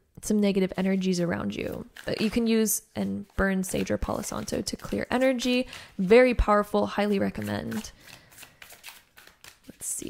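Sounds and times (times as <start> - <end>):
cards being shuffled: 7.2 - 10.0.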